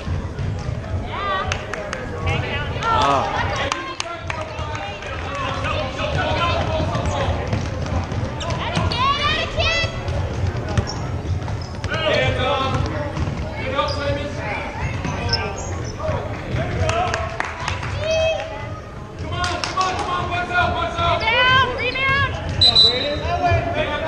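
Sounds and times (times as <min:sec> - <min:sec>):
basketball bouncing on hardwood: 0:06.1 - 0:09.0, 0:12.7 - 0:13.5.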